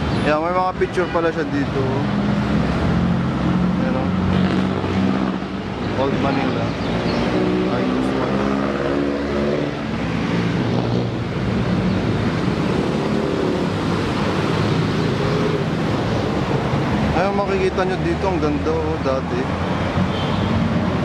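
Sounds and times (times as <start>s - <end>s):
road noise: 0.0s - 21.0s
vehicle engines droning: 0.0s - 21.0s.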